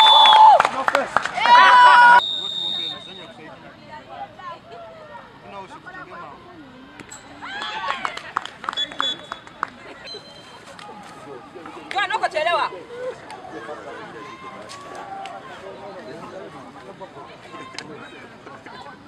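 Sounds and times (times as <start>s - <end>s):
players calling and chatting: 0.8s - 19.0s
loud drawn-out shout: 1.4s - 2.2s.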